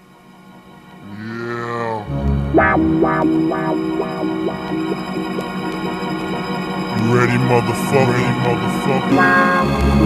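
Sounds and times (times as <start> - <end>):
low hum: 0.0 - 10.0
deep drawn-out voice-like sound: 1.0 - 2.2, 6.9 - 9.3.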